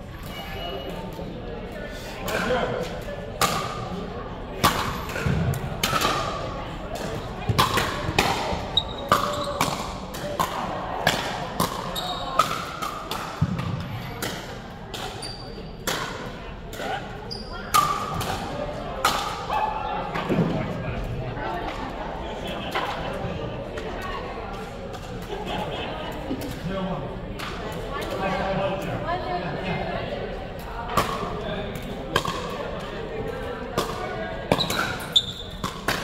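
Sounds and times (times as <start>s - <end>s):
voices chattering: 0.0s - 36.0s.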